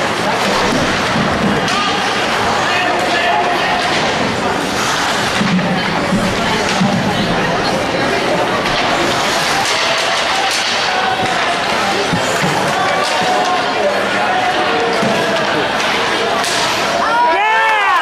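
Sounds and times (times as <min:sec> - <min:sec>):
crowd chatter: 0:00.0 - 0:18.0
hockey sticks and puck clacking: 0:00.0 - 0:18.0.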